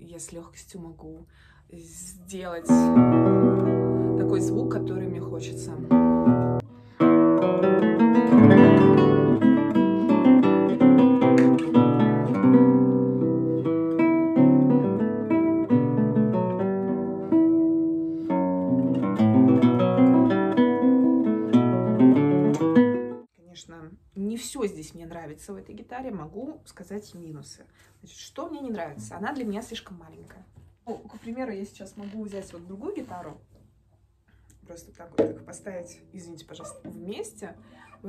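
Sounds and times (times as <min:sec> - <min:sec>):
fingerpicked classical guitar: 0:02.6 - 0:23.3.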